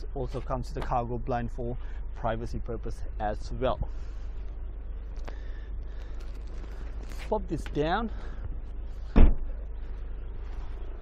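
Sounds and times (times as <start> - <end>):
car tailgate thud: 9.1 - 9.4.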